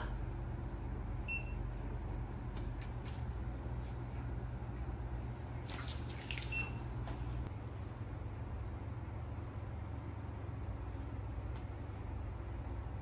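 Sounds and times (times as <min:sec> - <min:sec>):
patient monitor beeps: 0:01.3 - 0:01.6.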